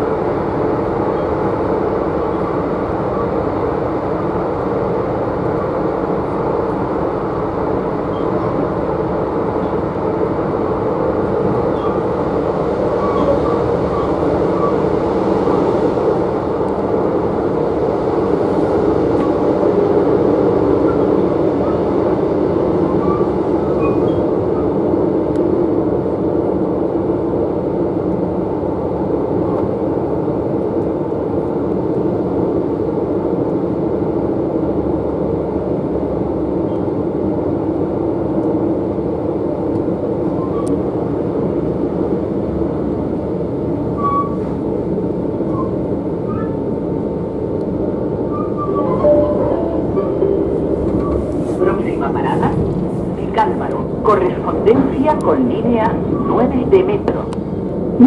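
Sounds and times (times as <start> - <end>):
train wheels rumbling on track: 0.0 - 58.0.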